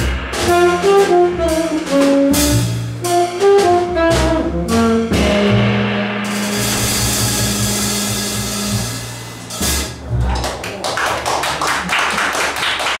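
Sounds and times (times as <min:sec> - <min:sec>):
jazz band held chord: 0:00.0 - 0:10.6
audience clapping: 0:10.3 - 0:13.0.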